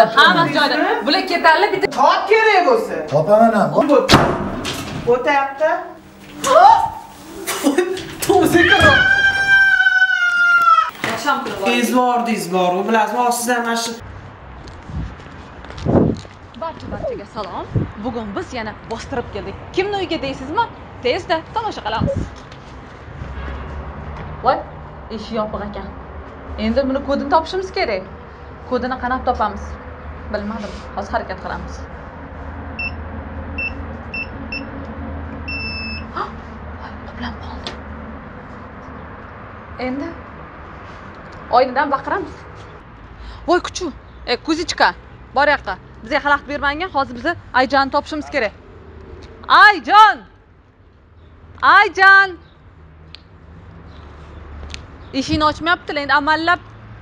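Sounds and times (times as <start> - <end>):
woman's high-pitched scream: 6.4 - 7.1, 8.4 - 10.9
keypad beeps: 33.6 - 34.7, 35.5 - 36.1.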